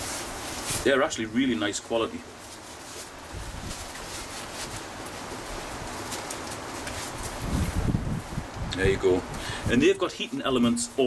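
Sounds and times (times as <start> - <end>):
padded gloves rustling: 0.0 - 8.6
light rain patter: 0.0 - 11.0.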